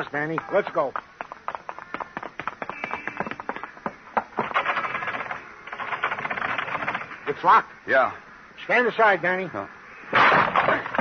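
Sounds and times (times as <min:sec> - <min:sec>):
hard shoes clicking on pavement: 0:00.0 - 0:06.3.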